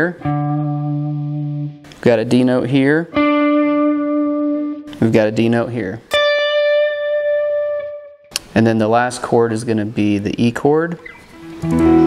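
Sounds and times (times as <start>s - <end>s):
electric guitar note ringing: 0.0s - 2.0s, 3.2s - 5.0s, 11.0s - 12.0s.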